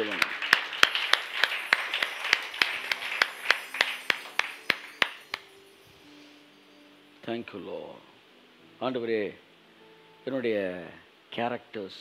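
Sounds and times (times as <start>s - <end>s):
man clapping hands: 0.0s - 5.5s.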